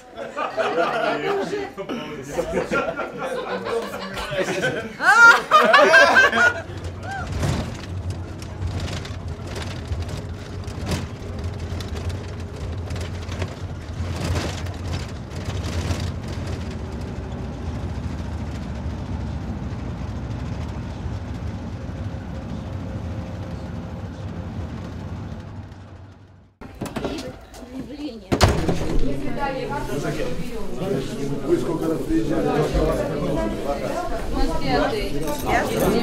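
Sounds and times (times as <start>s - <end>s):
vehicle engine and road rumble: 6.3s - 26.9s.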